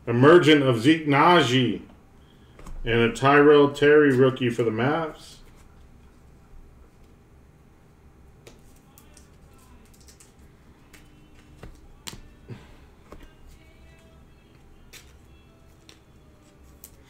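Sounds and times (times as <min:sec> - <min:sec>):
faint background music: 0:00.0 - 0:17.0
trading cards clicking and tapping: 0:08.4 - 0:12.4, 0:14.9 - 0:17.0.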